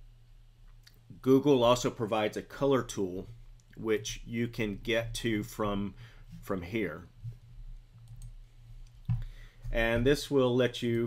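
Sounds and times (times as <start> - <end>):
steady low hum: 0.0 - 11.0
computer mouse clicks: 8.0 - 9.2.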